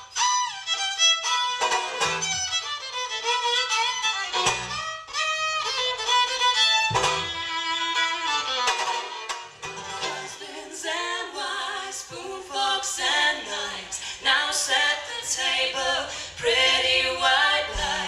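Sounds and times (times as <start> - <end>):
voices singing in harmony: 9.8 - 18.0.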